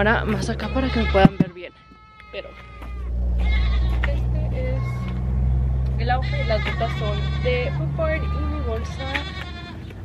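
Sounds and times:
goats bleating: 0:00.0 - 0:05.2, 0:06.0 - 0:10.0
low rumble: 0:02.9 - 0:09.0.

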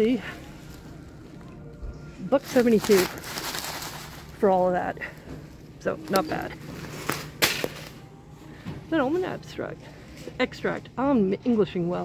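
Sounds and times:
plastic bag rustling: 0:02.3 - 0:05.3
bag slapping into metal cart: 0:07.0 - 0:08.0.

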